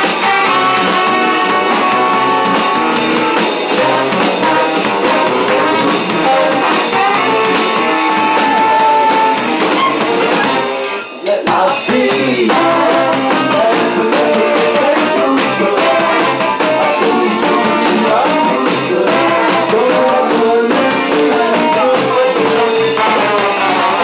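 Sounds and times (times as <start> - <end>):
live brass band playing: 0.0 - 24.0.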